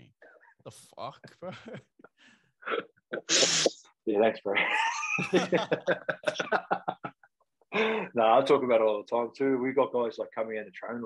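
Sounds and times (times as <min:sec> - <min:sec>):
man laughing: 0:01.0 - 0:02.2, 0:04.6 - 0:07.9.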